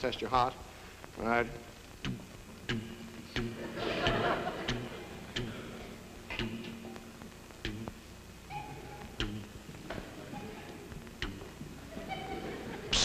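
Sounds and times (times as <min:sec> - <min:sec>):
audience laughter: 0:03.6 - 0:05.9, 0:11.9 - 0:13.0.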